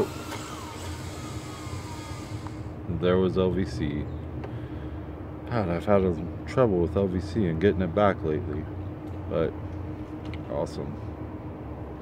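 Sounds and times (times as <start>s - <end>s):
drone motors winding down: 0.0s - 3.2s
low steady hum: 0.0s - 12.0s.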